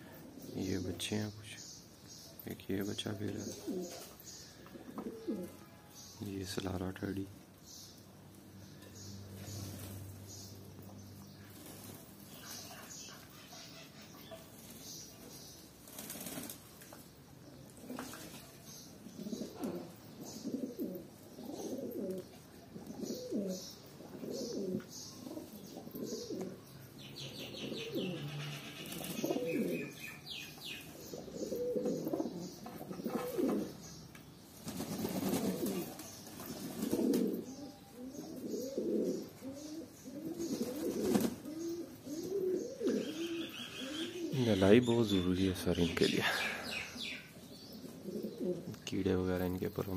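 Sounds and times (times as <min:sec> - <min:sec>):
pigeons cooing: 0:03.3 - 0:05.6, 0:17.7 - 0:34.0, 0:34.6 - 0:48.8.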